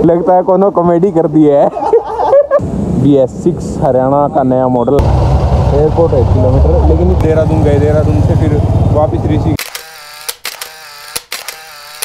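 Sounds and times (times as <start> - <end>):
sharp clicks and pops: 9.6 - 12.0.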